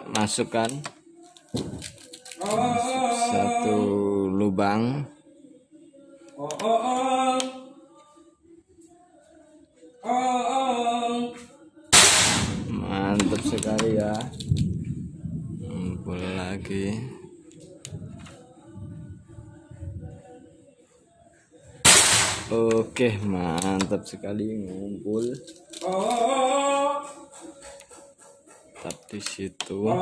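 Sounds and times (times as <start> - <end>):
person singing wavering phrase: 2.4 - 4.4
air rifle shot: 12.0 - 12.7, 21.8 - 22.6.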